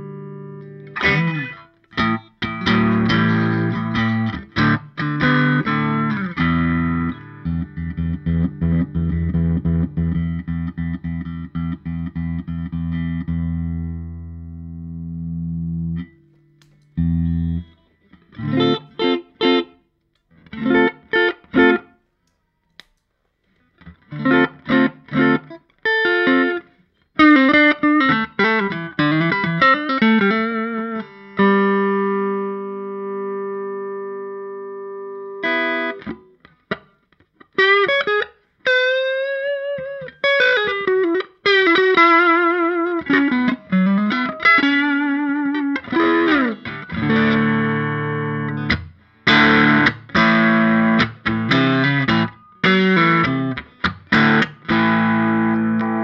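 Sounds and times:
overdriven electric guitar: 0.0s - 22.0s, 23.7s - 56.0s.

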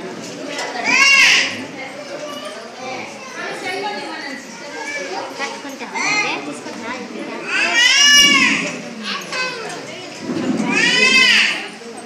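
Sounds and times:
chattering voices: 0.0s - 12.0s
children's high-pitched drawn-out calls: 0.8s - 3.6s, 7.4s - 9.5s, 10.6s - 11.8s.

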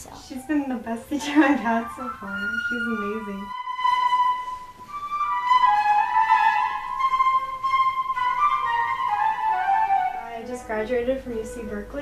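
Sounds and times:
flute melody: 0.3s - 12.0s.

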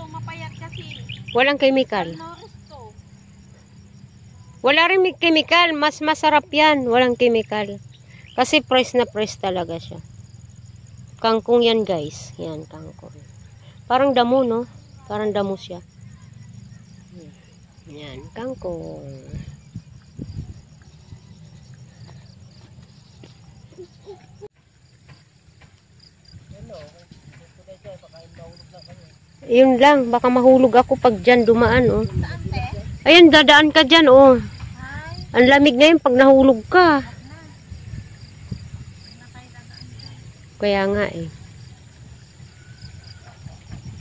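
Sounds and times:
crickets chirping: 0.0s - 44.0s
footsteps running on dirt: 20.6s - 29.4s.

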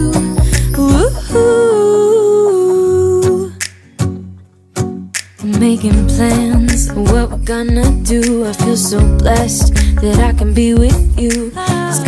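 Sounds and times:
person singing long wordless note: 0.0s - 3.5s
pop song backing: 0.0s - 12.0s.

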